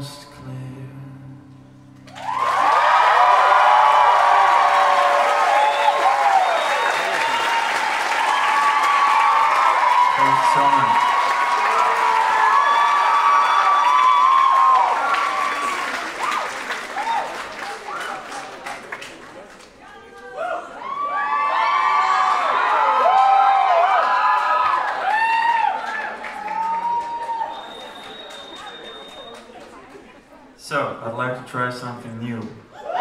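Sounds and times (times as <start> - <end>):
audience applauding and cheering: 2.0 - 30.4
crowd whoops and shouts: 2.1 - 18.4, 20.1 - 29.5, 32.7 - 33.0.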